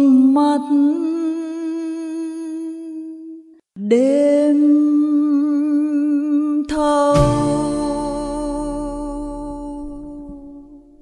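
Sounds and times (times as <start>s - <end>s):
woman singing a long note: 0.0s - 11.0s
low accompaniment: 7.1s - 11.0s.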